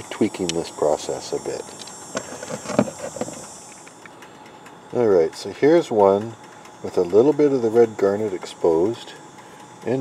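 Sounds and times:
faint insect chirring: 0.0 - 10.0.

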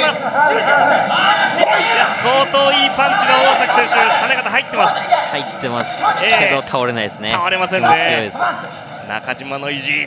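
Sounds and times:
arena crowd noise: 0.0 - 10.0
men talking: 0.0 - 10.0.

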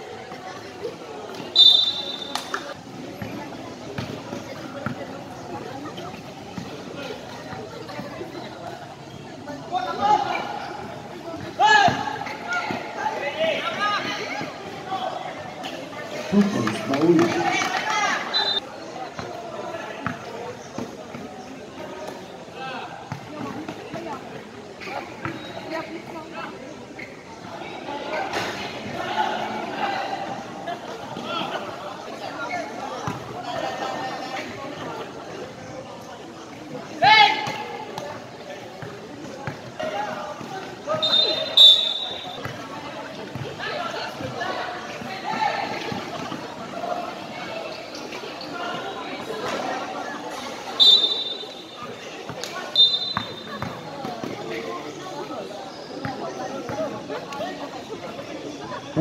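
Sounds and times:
people calling out: 1.4 - 2.8, 40.8 - 42.7, 50.7 - 53.9.

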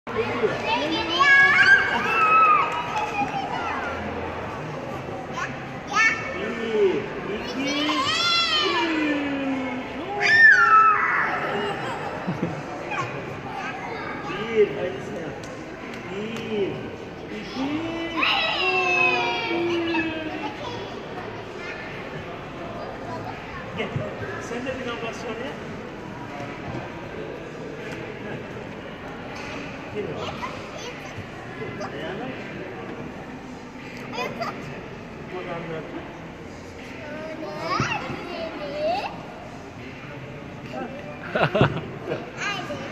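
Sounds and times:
children chattering: 0.1 - 15.0, 17.0 - 42.9.

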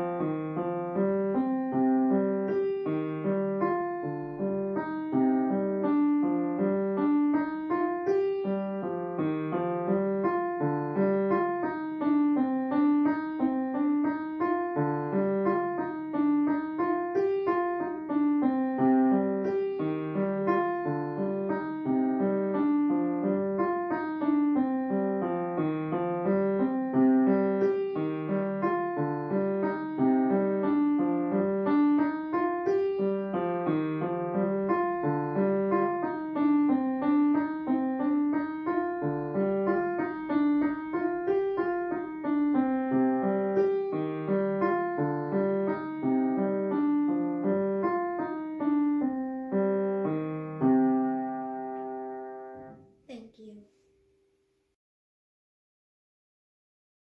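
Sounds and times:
solo piano piece: 0.0 - 53.0.

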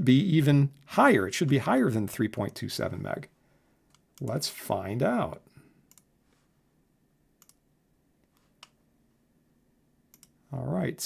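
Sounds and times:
computer mouse clicks: 5.9 - 6.1, 7.4 - 7.6, 10.1 - 10.4.

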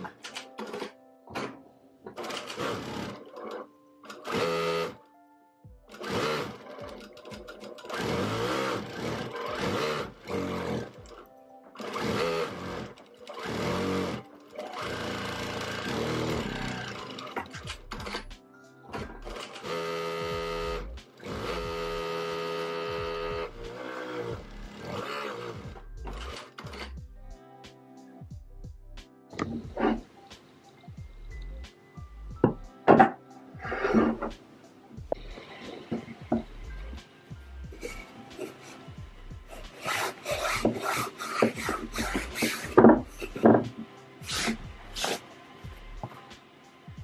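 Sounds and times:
sewing machine stitching: 2.2 - 5.0, 5.9 - 11.2, 11.8 - 18.3, 18.9 - 27.0, 39.5 - 43.6.

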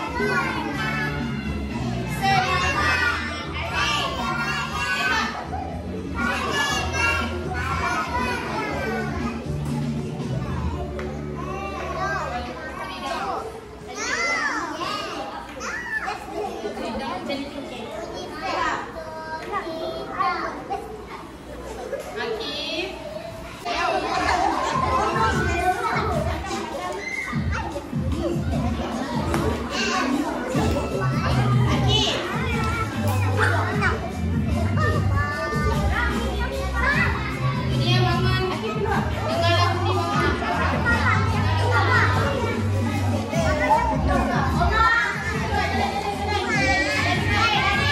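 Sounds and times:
background music: 0.0 - 12.4
young children chattering: 0.0 - 47.9.

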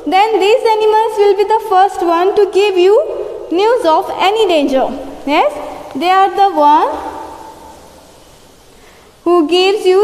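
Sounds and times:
woman speaking: 0.0 - 7.4, 9.2 - 10.0
faint room hiss: 0.0 - 10.0.

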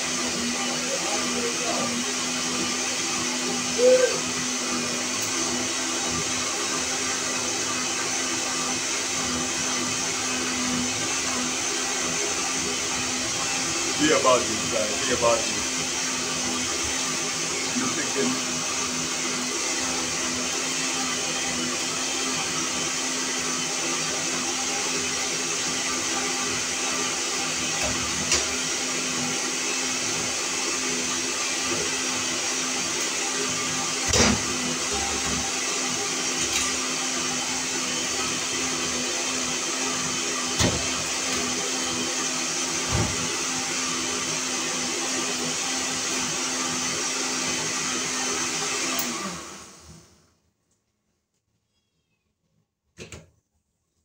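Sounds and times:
electric blender running: 0.0 - 50.3.

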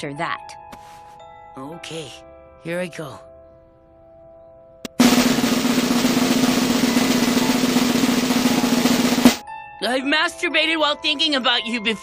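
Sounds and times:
snare drum roll: 4.9 - 9.4.

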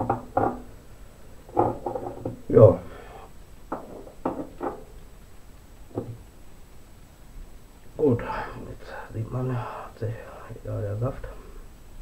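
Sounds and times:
glass jars knocking: 0.0 - 0.7, 3.7 - 4.8.

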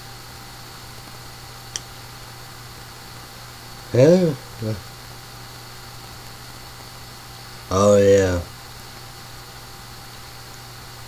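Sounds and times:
faint room hiss: 0.0 - 11.0
low electrical hum: 0.0 - 11.0.

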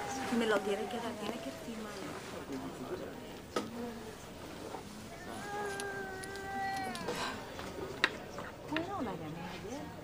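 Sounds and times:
high wailing cry: 0.0 - 2.1, 5.2 - 7.2.

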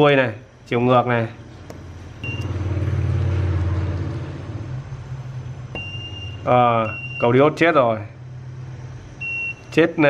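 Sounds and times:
low engine rumble: 1.4 - 9.2.

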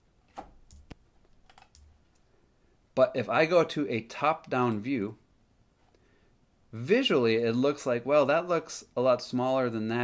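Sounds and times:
keyboard and mouse clicks: 0.3 - 2.3.

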